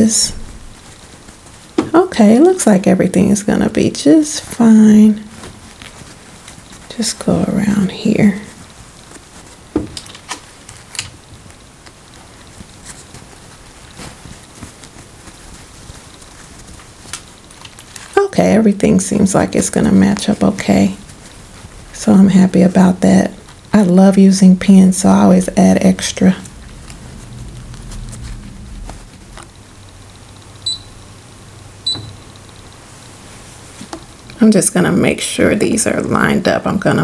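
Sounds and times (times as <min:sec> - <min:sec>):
fabric rustling: 0:00.0 - 0:34.8
high electronic beeps: 0:30.6 - 0:31.2, 0:31.8 - 0:32.4.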